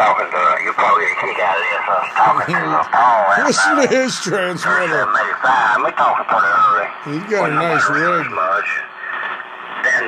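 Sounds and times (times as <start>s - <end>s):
man talking over radio speaker: 0.0s - 10.0s.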